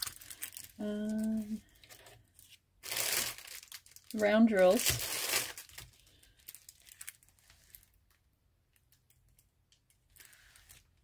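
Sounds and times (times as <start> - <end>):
plastic film crinkling: 0.0 - 11.0.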